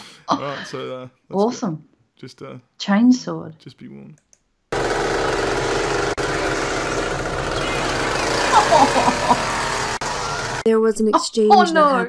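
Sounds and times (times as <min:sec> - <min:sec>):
chainsaw engine running: 0:04.7 - 0:10.7.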